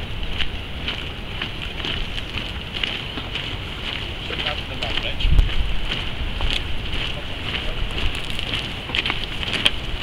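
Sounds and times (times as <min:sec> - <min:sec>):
cloth flags flapping: 0:00.0 - 0:10.0
wind buffeting microphone: 0:00.0 - 0:10.0.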